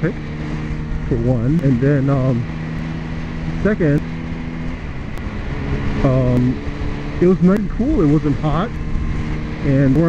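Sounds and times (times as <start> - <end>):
motorcycle engine drone: 0.0 - 10.0
road noise: 0.0 - 10.0
rushing wind: 0.0 - 10.0.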